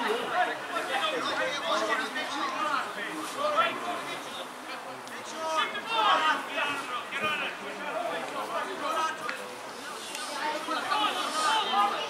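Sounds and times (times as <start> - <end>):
people calling and chatting: 0.0 - 12.0.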